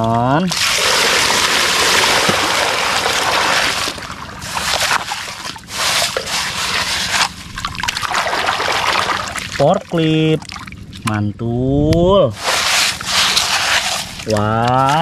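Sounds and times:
water splashing by hand: 0.5s - 11.1s, 12.3s - 15.0s.

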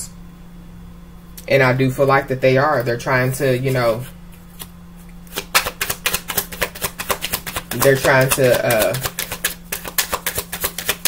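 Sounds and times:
faint steady hum: 0.0s - 11.0s
cards being shuffled: 3.6s - 11.0s.

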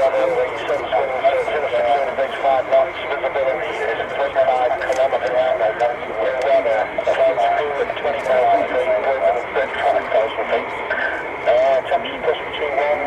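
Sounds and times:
jet engine whine: 0.0s - 13.0s
radio voice chatter: 0.0s - 13.0s.

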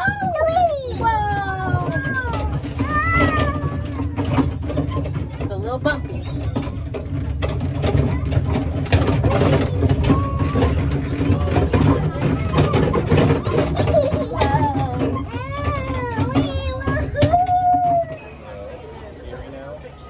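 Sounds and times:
child squealing and calling: 0.0s - 4.4s, 14.4s - 18.2s
carriage knocks and jolts: 0.0s - 17.4s
miniature train rumbling: 0.0s - 20.0s.

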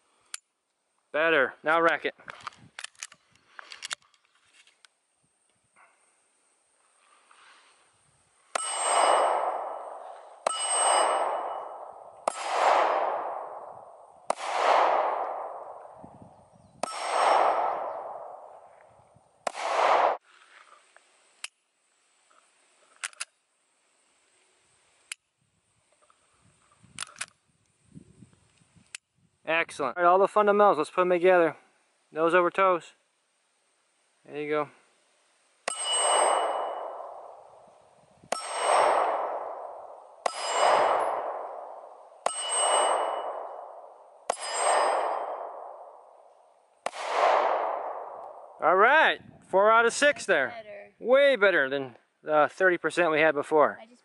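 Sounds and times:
pistol shots: 8.5s - 16.0s, 16.8s - 18.7s, 19.4s - 20.2s, 35.7s - 37.7s, 38.3s - 48.6s
ringing clang of steel targets: 8.5s - 16.0s, 16.8s - 18.7s, 35.6s - 46.3s.

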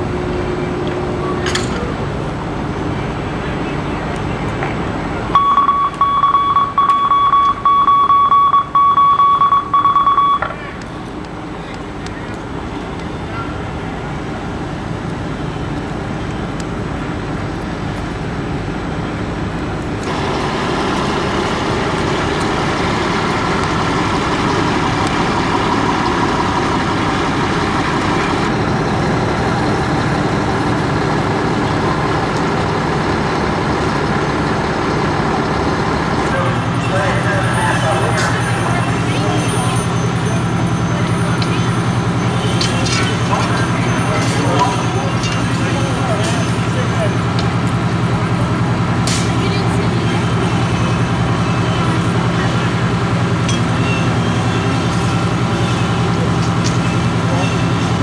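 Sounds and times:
fire engine pump running: 0.0s - 58.0s
high electronic tone: 5.4s - 10.5s.

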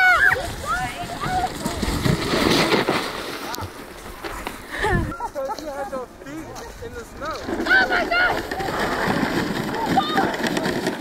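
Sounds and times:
sled sliding through snow: 0.0s - 11.0s.

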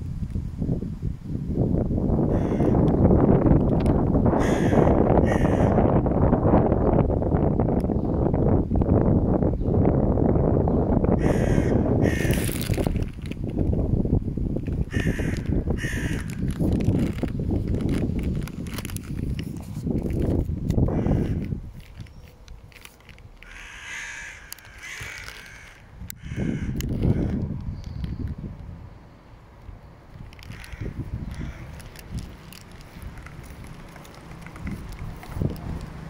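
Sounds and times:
crow cawing: 2.3s - 2.8s, 4.4s - 5.9s, 11.2s - 12.5s, 14.9s - 16.5s, 20.9s - 21.4s, 23.4s - 27.4s, 30.6s - 31.8s
harsh bird calls: 11.2s - 12.5s.

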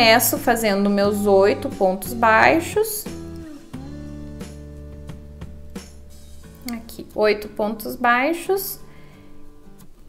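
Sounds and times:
guitar playing plucked notes: 0.0s - 7.8s.

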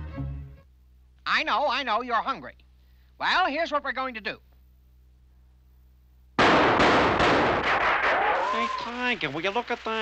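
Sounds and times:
cartoon rifle fire volley: 6.4s - 8.4s.

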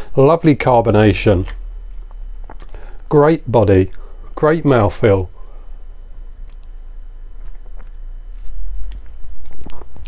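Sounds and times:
wet swallowing clicks: 1.4s - 2.8s, 6.4s - 10.0s.

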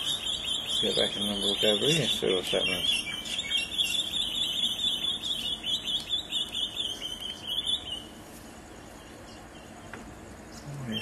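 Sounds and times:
bird trilling: 0.0s - 10.0s.

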